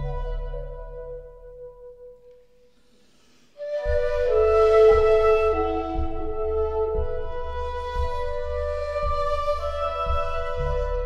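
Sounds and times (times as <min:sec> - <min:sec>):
bamboo flute playing held notes: 0:00.0 - 0:02.2, 0:03.6 - 0:11.0
low steady accompaniment strokes: 0:00.0 - 0:11.0.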